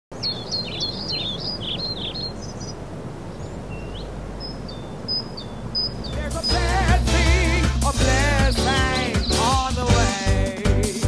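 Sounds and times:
low outdoor background noise: 0.1 - 9.7
songbirds chirping and singing: 0.1 - 11.0.

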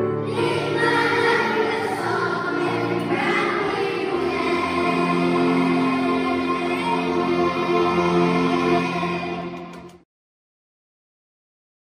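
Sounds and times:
children's choir singing: 0.0 - 10.0
piano accompaniment: 0.0 - 10.0.

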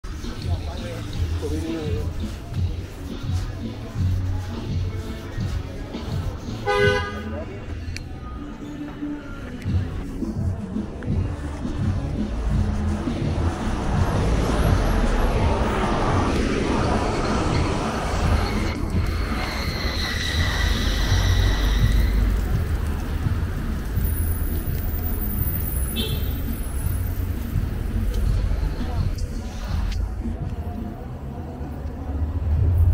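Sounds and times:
city street traffic: 0.0 - 32.9
cars passing with low rumble: 9.8 - 32.9
heavy vehicle approaching: 12.2 - 25.5
high-pitched squeal: 12.7 - 22.8.

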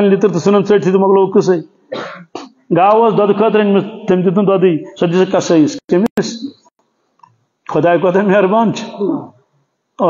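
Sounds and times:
man speaking into a microphone: 0.0 - 1.8, 2.7 - 6.7, 7.7 - 10.0
man clearing throat: 1.9 - 2.6.

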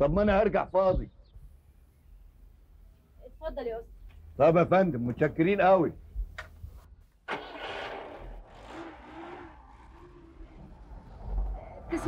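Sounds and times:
car engine pulling away: 7.2 - 12.0.

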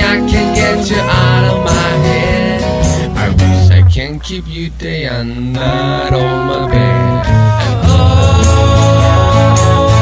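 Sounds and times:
person singing long held note: 0.0 - 4.1
band playing with steady bass: 0.0 - 10.0.

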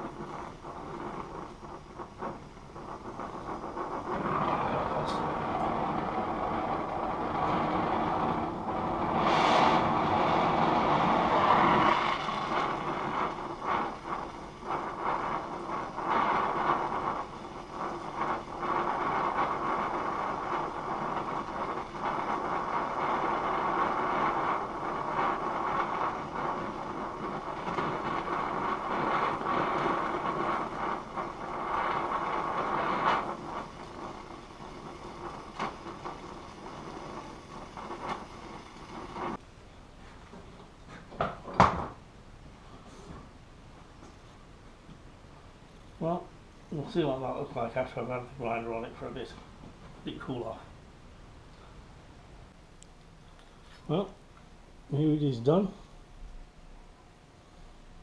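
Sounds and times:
welding torch flame hissing: 0.0 - 58.0.

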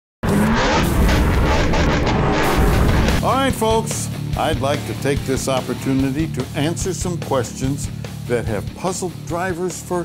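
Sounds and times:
racing car engine: 0.2 - 3.3
music: 2.5 - 10.0.

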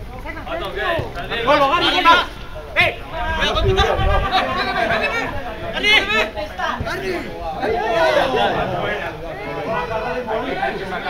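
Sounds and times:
overlapping voices chatter: 0.0 - 11.0.

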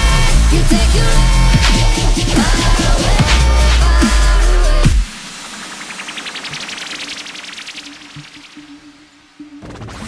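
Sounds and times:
white-noise riser with pulses: 0.2 - 9.6.

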